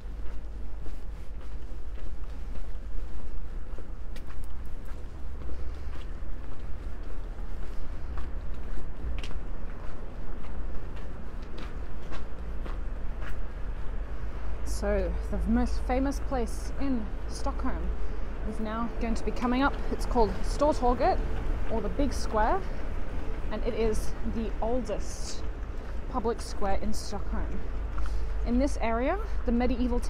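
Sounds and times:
footsteps on snowy cobblestones: 0:00.0 - 0:30.0
steady low rumble: 0:00.0 - 0:30.0.

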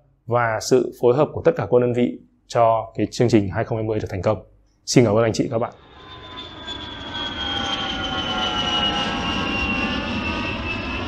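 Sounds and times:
high engine whine: 0:05.8 - 0:11.0
jet airliner roar: 0:05.8 - 0:11.0.

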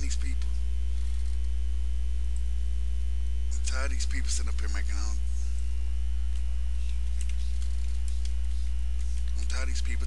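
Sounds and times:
person speaking: 0:00.0 - 0:00.7, 0:03.5 - 0:10.0
low electrical mains hum: 0:00.0 - 0:10.0.

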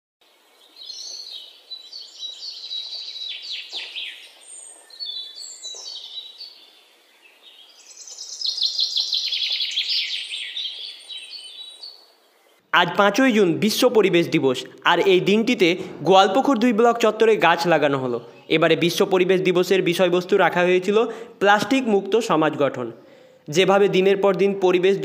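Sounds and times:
birds chirping: 0:00.2 - 0:25.0.

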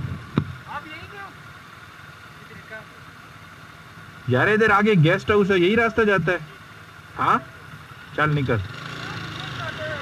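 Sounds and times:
motorcycle engine idling: 0:00.0 - 0:04.4, 0:05.0 - 0:10.0.

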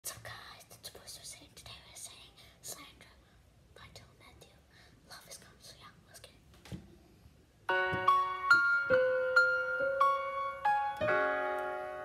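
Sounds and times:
girl whispering: 0:00.0 - 0:06.5.

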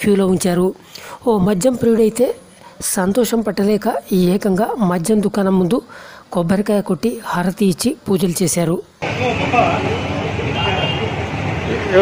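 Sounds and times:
street background noise: 0:00.0 - 0:12.0
men talking indistinctly: 0:09.0 - 0:11.0.

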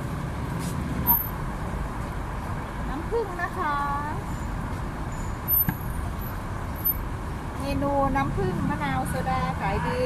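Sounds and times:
low rumble of road traffic: 0:00.0 - 0:10.0.

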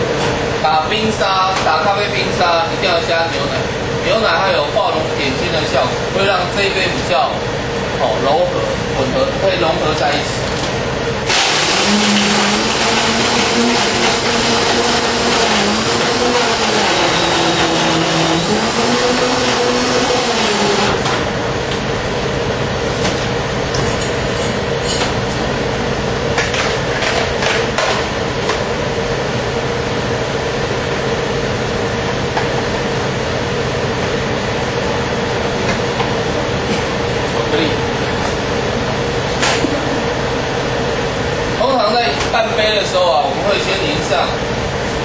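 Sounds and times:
blender motor running: 0:11.3 - 0:21.2.

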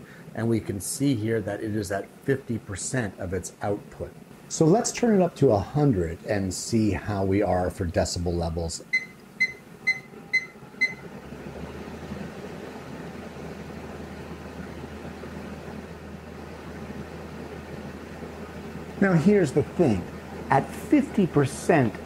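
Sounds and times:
extraction fan running: 0:00.0 - 0:22.0
control panel beeping: 0:08.9 - 0:11.1.

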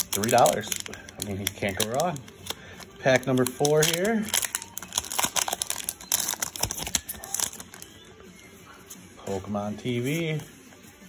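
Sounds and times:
foil wrapper crinkling: 0:00.0 - 0:07.9.

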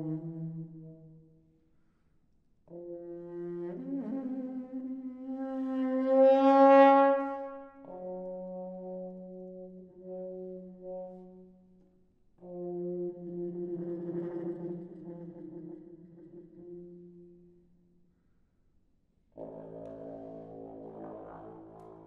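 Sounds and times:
muted trombone notes: 0:12.4 - 0:17.4, 0:19.4 - 0:22.0.

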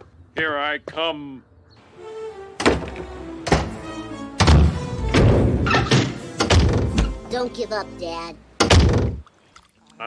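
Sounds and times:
background music: 0:01.8 - 0:09.2
cartoon doors slamming: 0:02.6 - 0:03.8, 0:04.4 - 0:07.2, 0:08.6 - 0:09.2.

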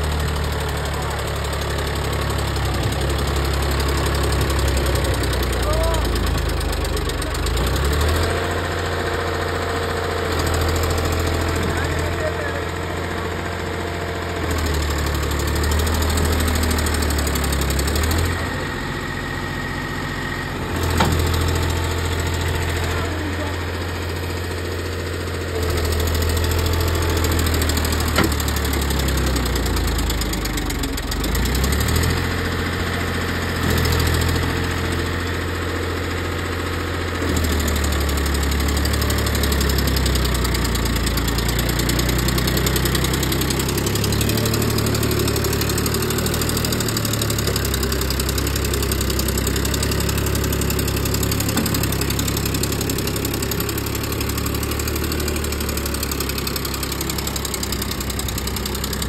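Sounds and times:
tractor diesel engine under load: 0:00.0 - 0:59.0.

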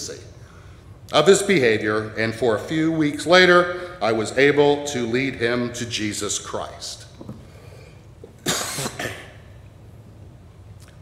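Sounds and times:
person coughing: 0:08.4 - 0:09.5.

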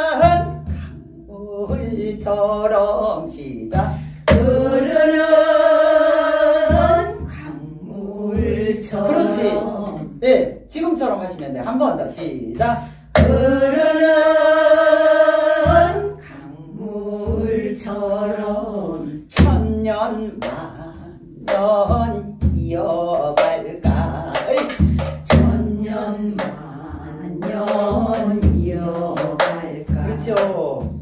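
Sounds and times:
woman singing folk song: 0:00.0 - 0:10.2, 0:12.6 - 0:31.0
hourglass drum strokes: 0:04.3 - 0:10.1.

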